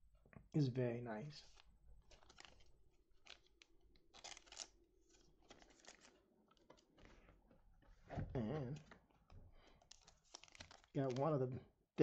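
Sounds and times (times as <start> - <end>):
trading cards rustling: 1.4 - 7.3, 8.6 - 11.4.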